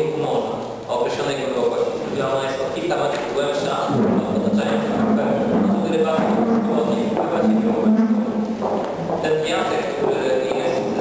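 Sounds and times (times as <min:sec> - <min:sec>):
man talking: 0:00.0 - 0:08.3, 0:09.2 - 0:11.0.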